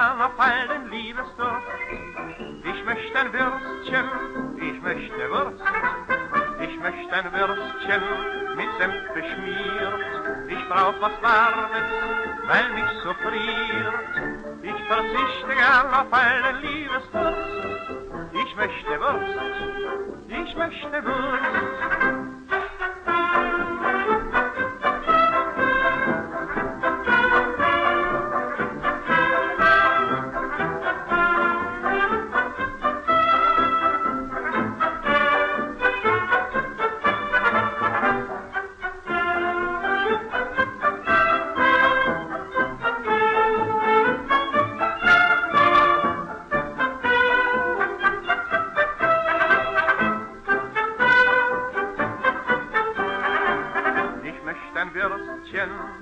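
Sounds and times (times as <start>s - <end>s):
dance orchestra with brass: 0.0s - 56.0s.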